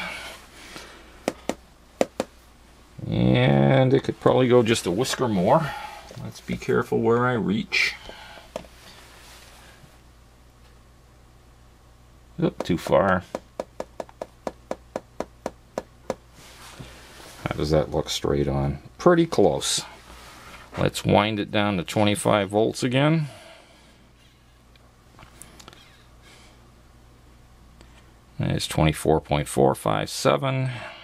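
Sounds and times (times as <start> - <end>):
fingertip tapping on meter: 12.6 - 16.2.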